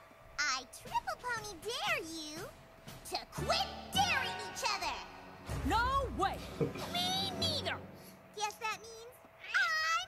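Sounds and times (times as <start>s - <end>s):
squeaky cartoon voices: 9.4s - 10.0s.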